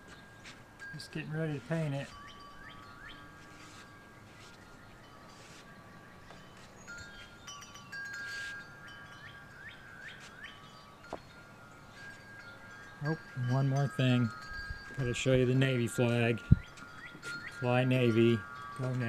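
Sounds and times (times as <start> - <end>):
wind chimes ringing: 0.0 - 19.0.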